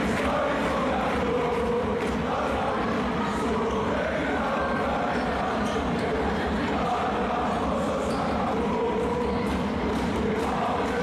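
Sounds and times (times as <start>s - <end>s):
fans chanting and cheering: 0.0s - 11.0s.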